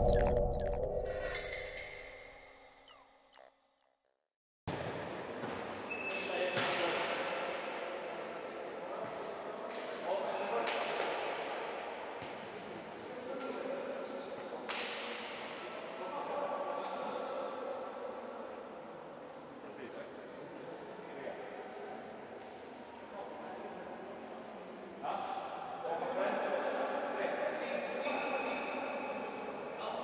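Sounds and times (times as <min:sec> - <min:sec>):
sharp smack echoing in hall: 0:06.4 - 0:07.2, 0:09.7 - 0:11.4, 0:14.7 - 0:15.4.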